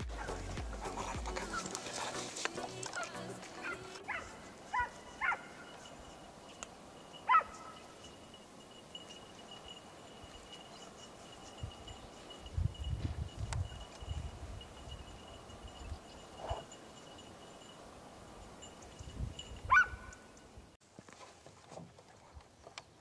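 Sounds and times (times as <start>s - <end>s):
background music: 0.0s - 4.6s
dogs barking and yelping: 0.0s - 6.2s, 7.2s - 7.9s, 19.7s - 20.2s.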